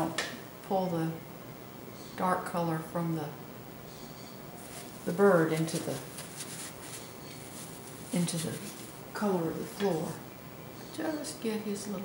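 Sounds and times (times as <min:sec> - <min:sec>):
paintbrush rustling: 0:04.6 - 0:10.2.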